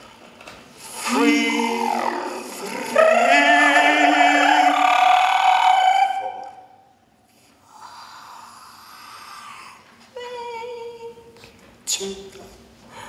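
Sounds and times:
voices holding a sung note: 0.8s - 7.0s.

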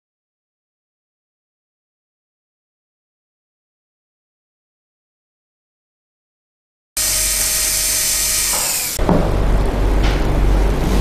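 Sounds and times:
dental drill whining and grinding: 7.0s - 9.0s.

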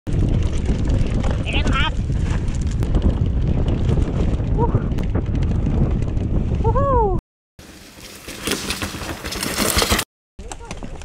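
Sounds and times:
wind buffeting microphone: 0.1s - 7.2s
mountain bike rumble and rattle: 0.1s - 11.0s.

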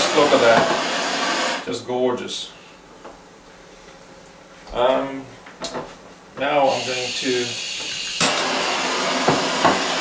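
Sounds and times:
torch flame hissing: 0.0s - 1.6s, 6.7s - 10.0s.

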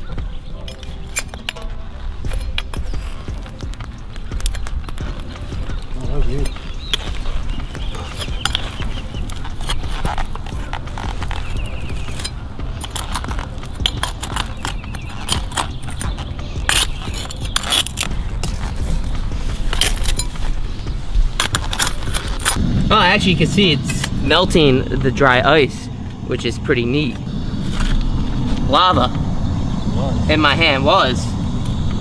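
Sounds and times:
steady low rumble: 0.0s - 32.0s.

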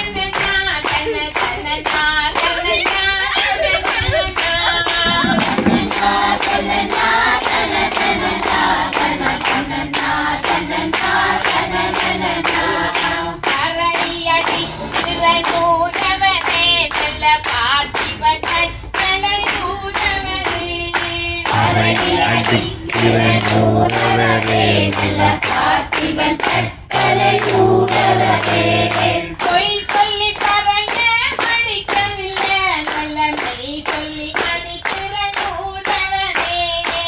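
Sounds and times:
hand claps: 0.0s - 37.0s
group singing a chant: 4.1s - 18.7s, 19.6s - 37.0s
deeper voices singing: 4.4s - 15.9s, 21.4s - 29.8s.

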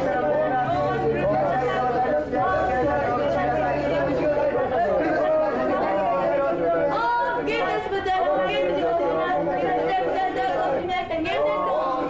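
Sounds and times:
many people talking: 0.0s - 12.0s.

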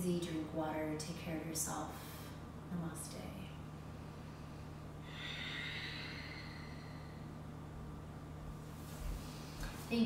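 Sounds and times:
low hum: 0.0s - 10.0s
person exhaling softly: 5.0s - 7.4s.

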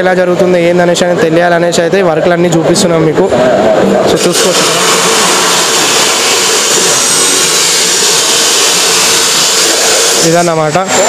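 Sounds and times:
angle grinder grinding steel: 4.1s - 11.0s.

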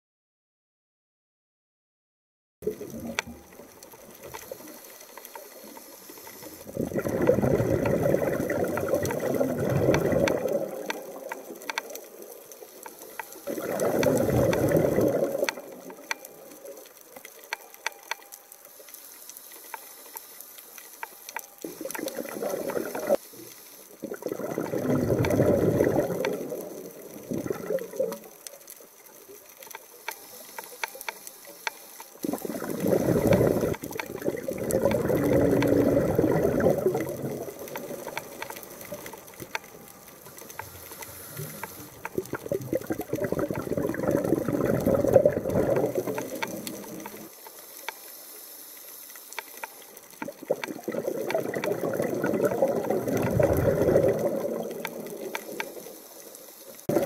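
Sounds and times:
faint clicking: 2.6s - 57.0s
underwater bubbling and gurgling: 2.6s - 57.0s.

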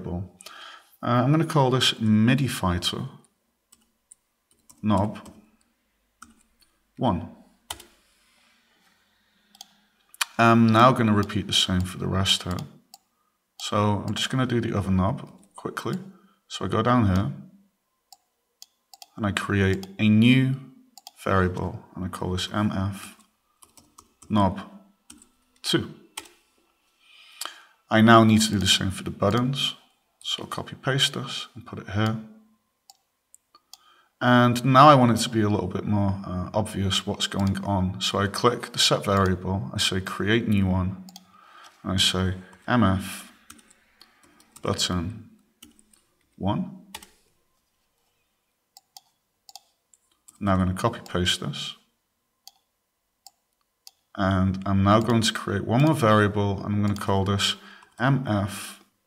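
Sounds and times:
keyboard and mouse clicks: 3.7s - 6.7s, 7.7s - 8.0s, 9.4s - 13.1s, 18.1s - 20.0s, 21.0s - 21.6s, 23.2s - 24.3s, 25.1s - 25.6s, 26.2s - 26.4s, 32.9s - 33.9s, 37.2s - 37.7s, 39.1s - 39.4s, 42.5s - 47.2s, 48.8s - 51.2s, 52.4s - 54.1s, 56.8s - 57.1s.

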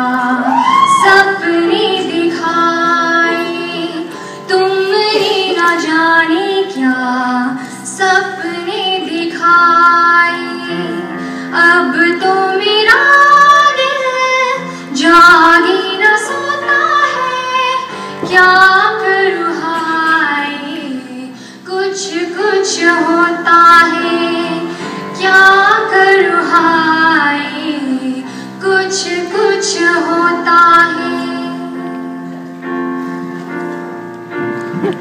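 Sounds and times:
woman singing: 0.0s - 31.9s
electronic keyboard chords: 31.3s - 35.0s.

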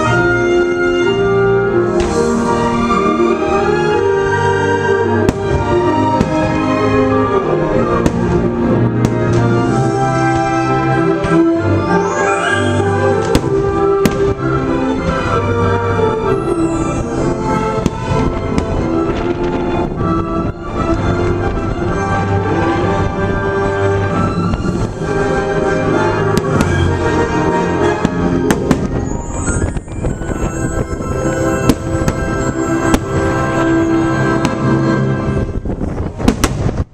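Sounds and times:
orchestral music: 0.0s - 36.9s
fireworks going off: 5.2s - 7.1s, 7.8s - 10.6s, 11.2s - 15.4s, 16.3s - 22.2s, 26.0s - 36.9s
loud show music: 5.2s - 19.4s
sharp firework bang: 13.3s - 14.4s, 36.0s - 36.9s.

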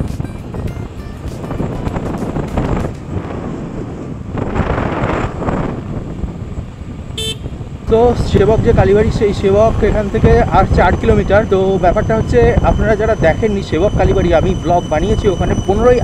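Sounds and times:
wind and road noise: 0.0s - 16.0s
scooter horn toot: 7.1s - 7.6s.

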